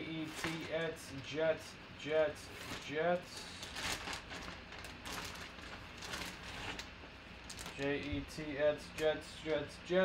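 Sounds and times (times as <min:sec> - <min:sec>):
plastic bag crinkling: 0:02.6 - 0:08.2.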